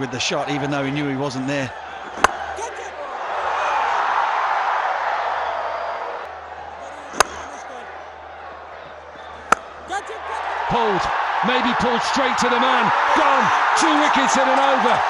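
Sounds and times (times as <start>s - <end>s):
stadium crowd roaring: 0.0s - 15.0s
cricket bat striking ball: 2.1s - 2.6s, 7.1s - 7.5s, 9.5s - 9.8s.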